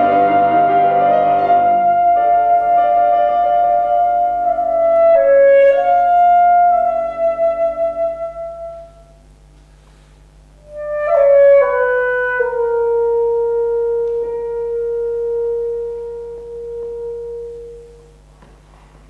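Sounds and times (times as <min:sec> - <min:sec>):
alto saxophone: 0:00.0 - 0:09.6, 0:10.5 - 0:18.6.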